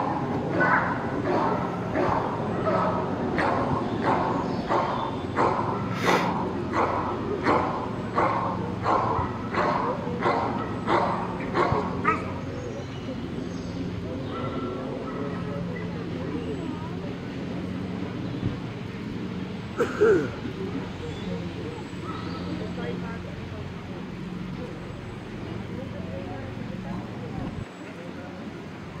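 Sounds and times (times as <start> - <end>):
dog barking rhythmically: 0.5 - 5.9, 6.7 - 12.3.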